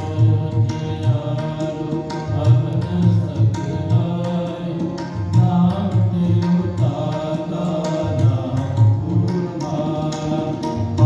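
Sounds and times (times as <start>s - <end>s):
harmonium chords: 0.0s - 11.0s
tabla strokes: 0.0s - 11.0s.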